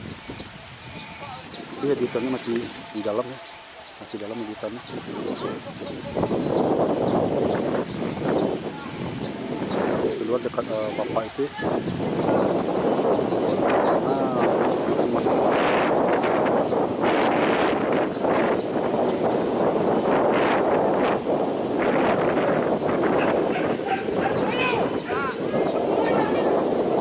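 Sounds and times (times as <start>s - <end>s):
dogs barking and yelping: 23.0s - 26.4s.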